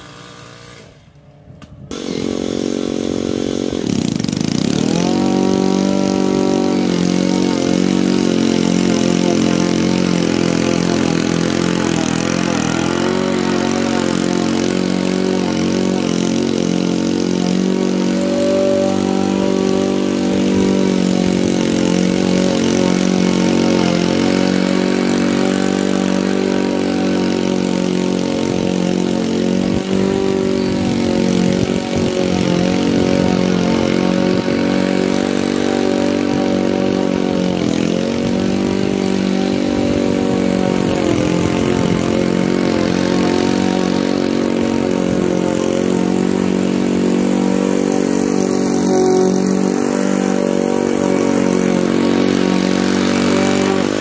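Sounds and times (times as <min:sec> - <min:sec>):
lawn mower engine cutting grass: 0:00.0 - 0:54.0.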